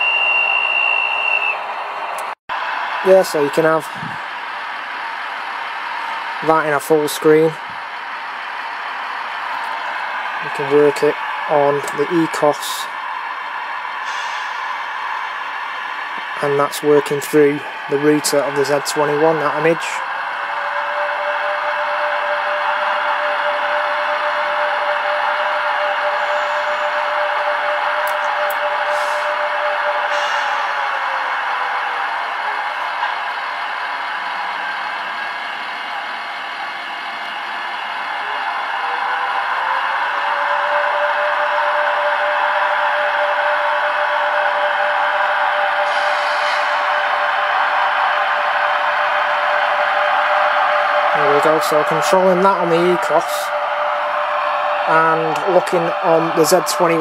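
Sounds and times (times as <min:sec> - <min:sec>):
model train motor whine: 0:20.6 - 0:32.8, 0:43.1 - 0:47.1.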